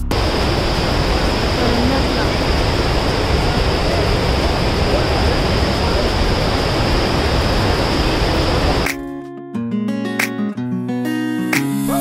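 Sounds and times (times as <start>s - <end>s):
waterfall roaring: 0.1s - 8.9s.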